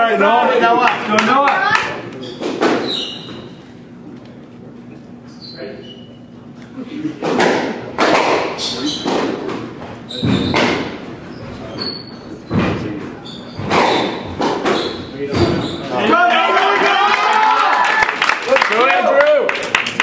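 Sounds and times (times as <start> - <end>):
shoes squeaking on wooden floor: 2.2 - 3.9, 8.4 - 16.0
ball thudding against walls: 2.4 - 2.9, 7.2 - 11.1, 12.4 - 15.8
squash ball cracking off rackets: 7.2 - 11.0, 13.6 - 15.6.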